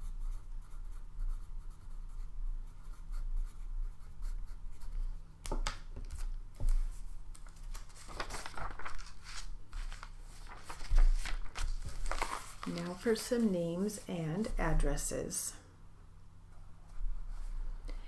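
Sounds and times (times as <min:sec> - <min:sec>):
steady low hum: 0:00.0 - 0:18.0
paper scratching and rubbing: 0:07.7 - 0:14.6.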